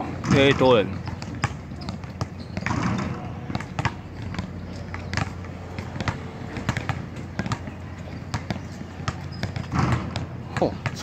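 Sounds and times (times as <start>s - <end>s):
basketballs bouncing on court: 0.0s - 11.0s.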